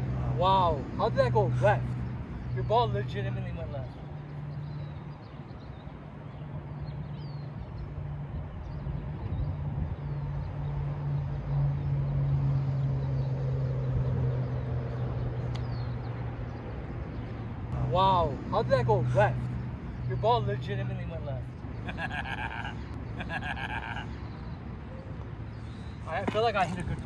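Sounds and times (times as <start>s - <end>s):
low engine hum: 0.0s - 27.0s
outdoor background noise: 0.0s - 27.0s.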